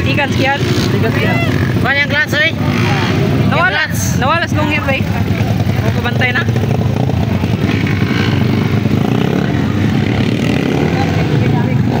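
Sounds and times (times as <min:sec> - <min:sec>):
people talking: 0:00.0 - 0:07.7, 0:09.0 - 0:12.0
motorcycle engine running: 0:00.0 - 0:12.0.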